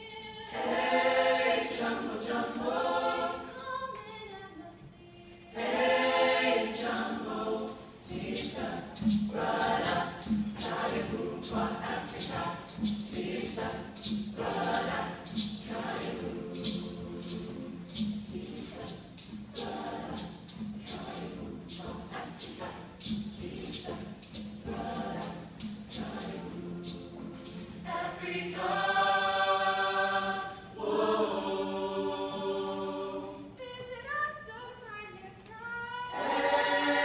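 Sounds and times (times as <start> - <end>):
choir singing in harmony: 0.0 - 4.0, 5.4 - 33.6, 36.0 - 37.0.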